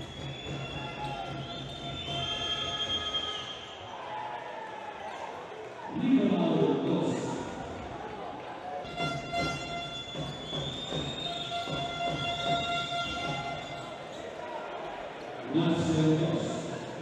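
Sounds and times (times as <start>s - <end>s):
voices echoing in arena: 0.0s - 17.0s.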